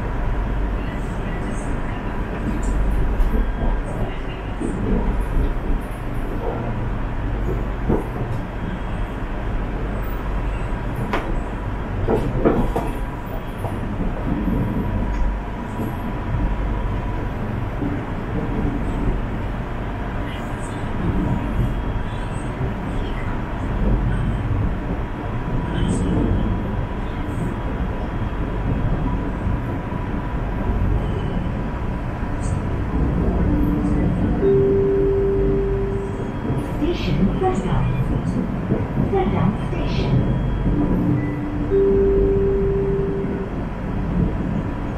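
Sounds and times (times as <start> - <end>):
train wheels rumbling on rails: 0.0 - 44.9
steady high tone: 33.7 - 36.5, 40.8 - 43.6
short low tone: 41.2 - 43.5.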